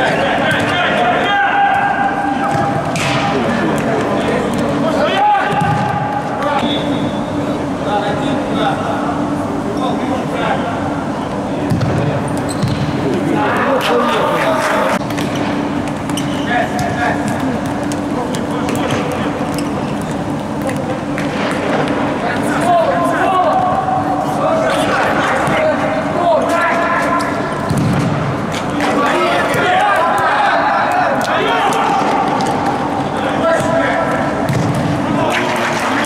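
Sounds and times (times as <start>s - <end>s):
voices echoing in sports hall: 0.0s - 36.0s.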